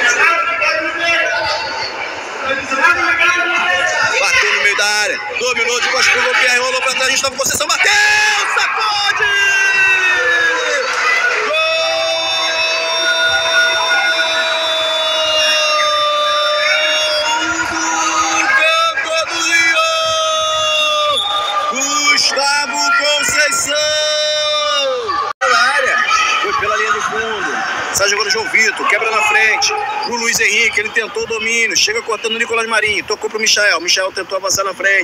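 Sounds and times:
crowd cheering: 0.0 - 32.6
commentator shouting goal: 15.1 - 27.5.

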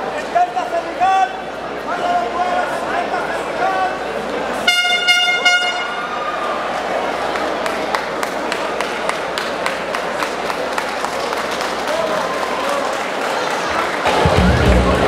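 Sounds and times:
crowd noise: 0.0 - 15.0
pulsing horn blast: 4.7 - 6.1
scattered clapping: 7.2 - 15.0.

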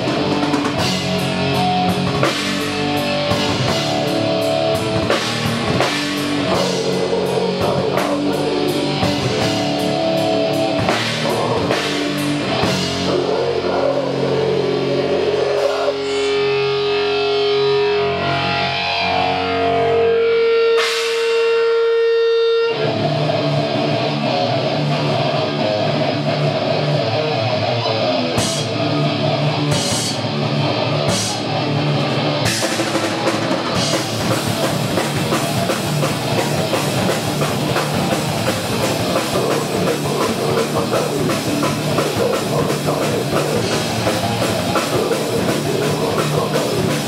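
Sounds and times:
fast drumming: 0.0 - 13.8, 31.1 - 47.0
distorted electric guitars: 0.0 - 47.0.

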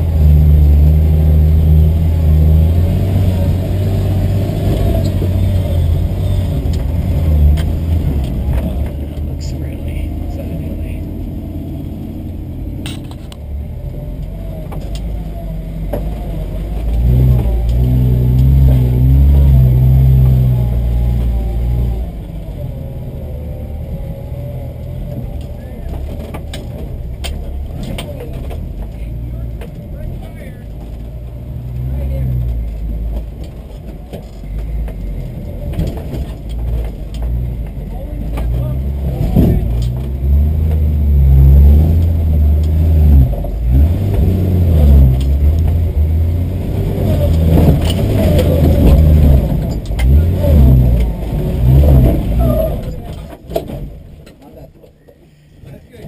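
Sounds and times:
car engine revving: 0.0 - 54.7.

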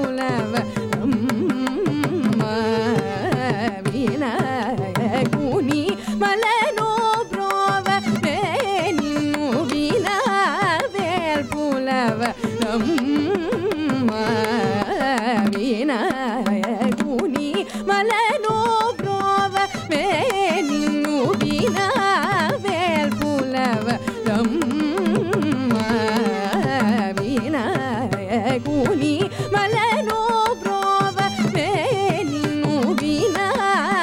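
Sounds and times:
violin: 0.0 - 34.0
woman singing: 0.0 - 34.0.

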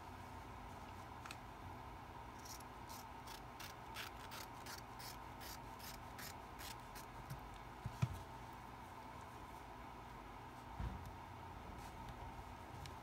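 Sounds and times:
soft thump: 10.8 - 11.1.

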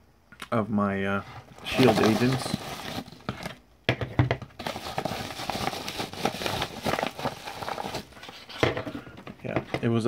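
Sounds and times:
paper bag crinkling: 1.4 - 3.5, 4.6 - 8.6.

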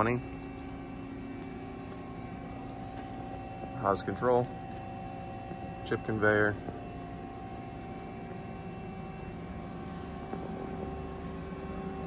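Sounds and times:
idle machine hum with steady tones: 0.0 - 12.0.

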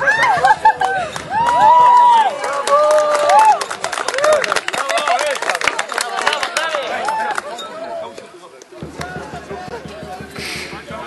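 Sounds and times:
men whooping and shouting: 0.0 - 4.5
hands clapping: 0.8 - 7.5, 8.2 - 9.2.

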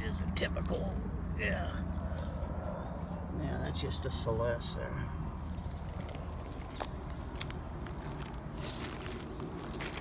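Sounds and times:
footsteps on gravel: 5.8 - 10.0.

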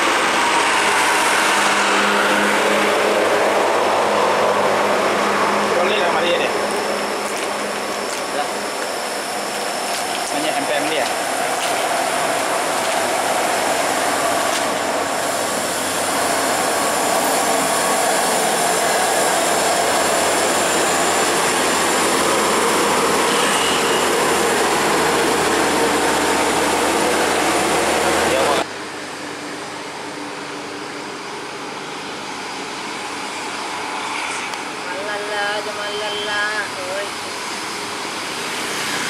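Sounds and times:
coach diesel engine labouring: 0.0 - 32.0.

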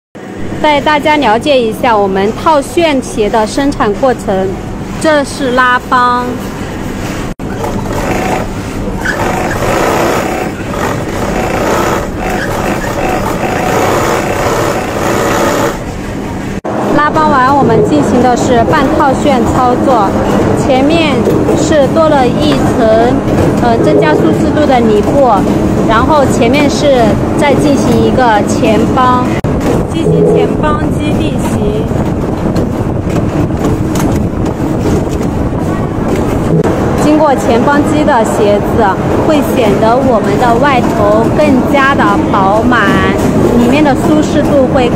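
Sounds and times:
machinery mechanical drone: 0.2 - 44.9
stitching machine running: 7.5 - 15.9.

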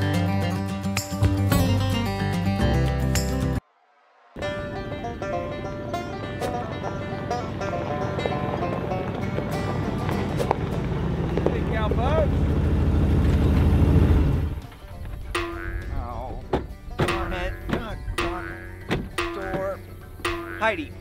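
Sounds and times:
background music: 0.0 - 11.1, 14.4 - 21.0
truck engine and tyres on gravel: 4.4 - 15.4.

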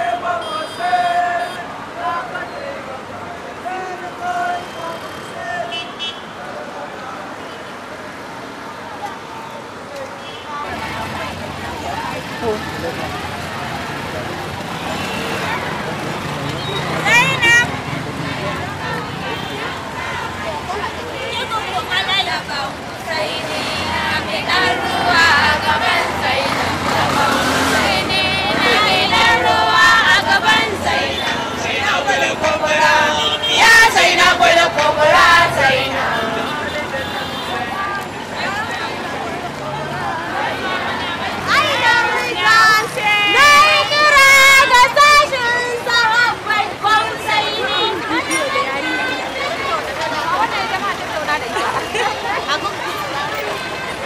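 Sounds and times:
many distant voices: 0.0 - 54.0
road traffic: 0.0 - 54.0
voices close by: 0.0 - 54.0
crowd chanting in unison: 10.7 - 50.8.

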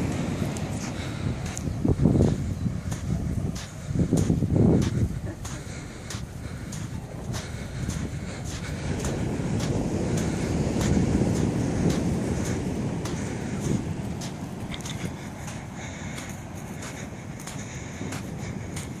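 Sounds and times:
faint crackles and ticks: 0.0 - 19.0
wind rumbling on microphone: 0.0 - 19.0.

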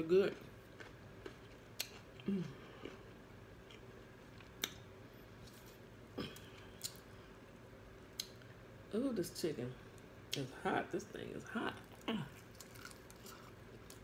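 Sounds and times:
chewing with mouth clicks: 0.3 - 4.8.

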